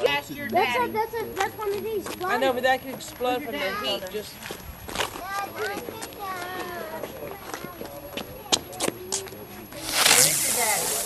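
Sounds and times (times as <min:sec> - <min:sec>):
voices talking: 0:00.0 - 0:11.0
firework spraying sparks hissing: 0:09.8 - 0:11.0.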